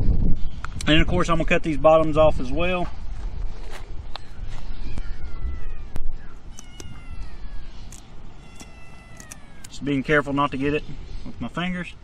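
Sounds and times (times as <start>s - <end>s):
kitten meowing: 4.8s - 10.1s
scissors snipping: 7.8s - 9.8s.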